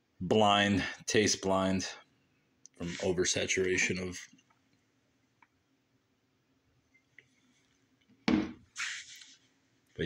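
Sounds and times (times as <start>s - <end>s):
short hiss: 8.8s - 9.3s.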